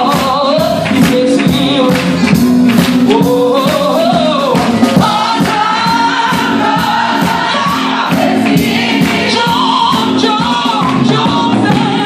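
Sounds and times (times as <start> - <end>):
steady percussive beat: 0.0 - 12.0
gospel choir singing: 3.0 - 12.0.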